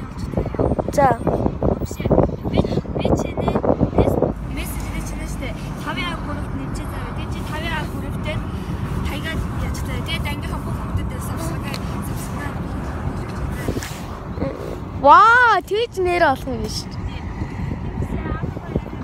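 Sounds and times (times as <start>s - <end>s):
road and engine noise in car: 0.0s - 19.0s.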